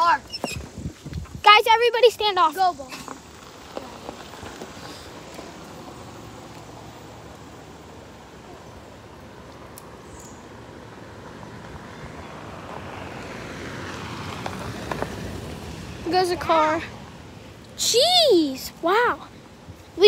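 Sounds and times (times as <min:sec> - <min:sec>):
car driving on gravel: 0:02.7 - 0:09.6, 0:10.5 - 0:17.6.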